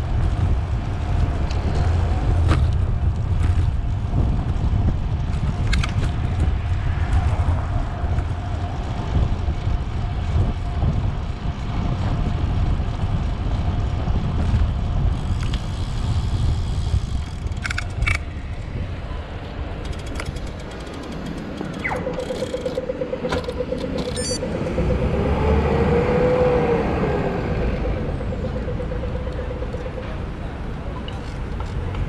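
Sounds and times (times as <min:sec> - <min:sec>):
tyre on road noise: 0:00.0 - 0:32.0
wind buffeting microphone: 0:00.0 - 0:32.0.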